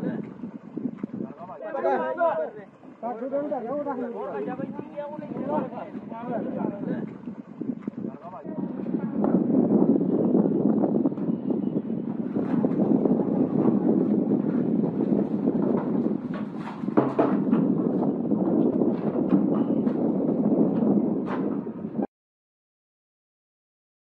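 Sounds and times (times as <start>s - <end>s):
wind buffeting microphone: 0.0s - 22.1s.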